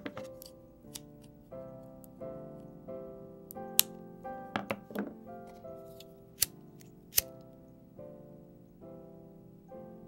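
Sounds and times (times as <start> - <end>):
soft keyboard music: 0.0 - 10.0
scissors snipping: 5.9 - 7.3.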